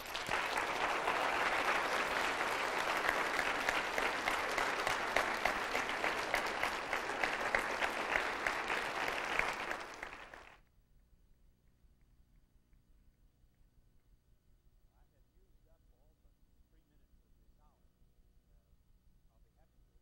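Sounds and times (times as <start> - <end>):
audience applauding: 0.0 - 10.6.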